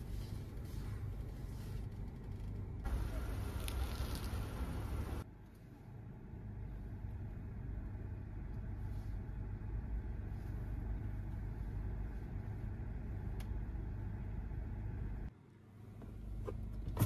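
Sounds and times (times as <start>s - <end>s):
car engine idling: 2.8s - 5.2s.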